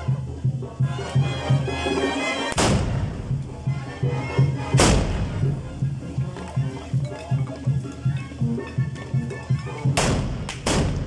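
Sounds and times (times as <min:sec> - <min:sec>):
band music with steady beat: 0:00.0 - 0:10.4
loud musket shots: 0:02.5 - 0:03.2, 0:04.7 - 0:05.5, 0:10.0 - 0:11.0.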